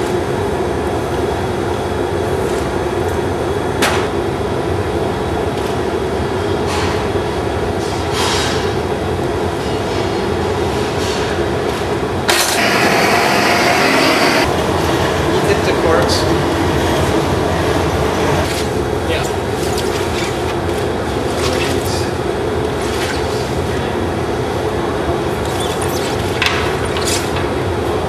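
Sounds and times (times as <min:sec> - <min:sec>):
loud hiss: 0:12.3 - 0:14.5
burners roaring: 0:12.3 - 0:18.5.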